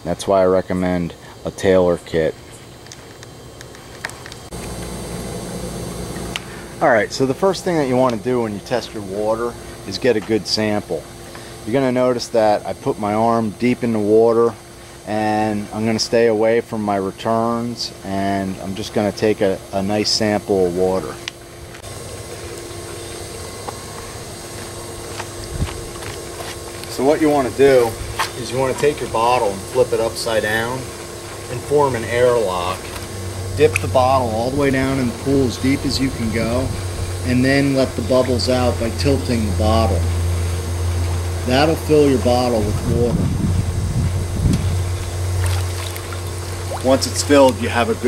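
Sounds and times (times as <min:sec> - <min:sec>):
low machine hum: 0:00.0 - 0:48.0.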